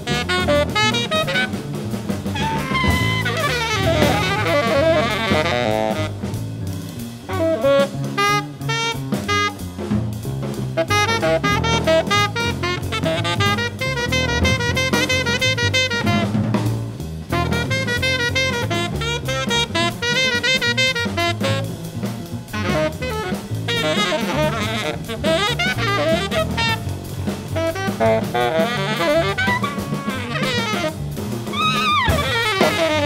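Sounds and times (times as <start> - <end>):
trumpet: 0.0 - 6.6, 7.3 - 9.9, 10.7 - 33.0
tenor saxophone: 0.0 - 9.9, 10.7 - 33.0
busy drum kit: 0.0 - 33.0
double bass: 0.0 - 33.0.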